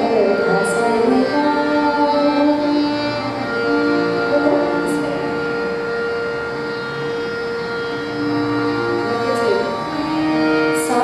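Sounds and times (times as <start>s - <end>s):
drone: 0.0s - 11.0s
harmonium holding a note: 0.0s - 11.0s.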